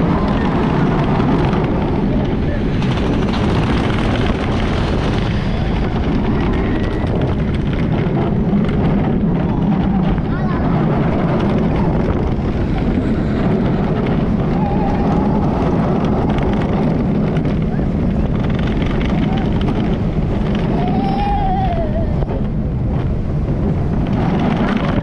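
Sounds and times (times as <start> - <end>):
faint rider voices: 0.0 - 8.2, 8.8 - 22.9
roller coaster train rumbling: 0.0 - 25.0
wind rush on microphone: 0.0 - 25.0.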